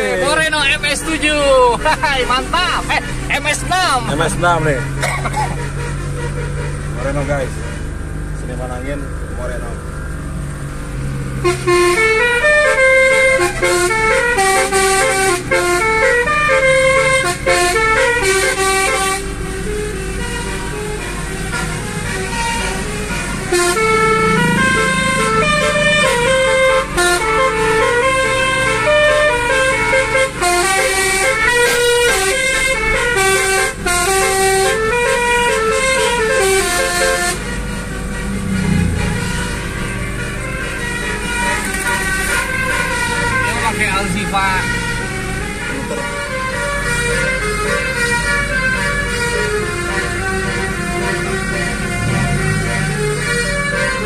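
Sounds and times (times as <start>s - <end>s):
engine and road noise: 0.0s - 54.0s
air horn melody: 3.6s - 7.9s, 11.4s - 54.0s.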